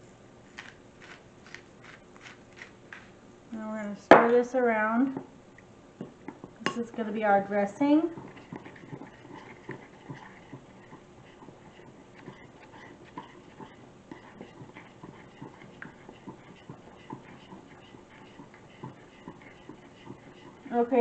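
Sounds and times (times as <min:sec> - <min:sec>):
spoon scraping glass bowl: 0:08.0 - 0:21.0.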